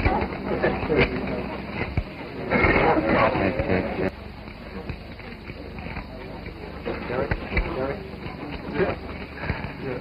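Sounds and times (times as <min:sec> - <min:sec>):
indistinct crowd voices: 0:00.0 - 0:10.0
recording noise: 0:00.0 - 0:10.0.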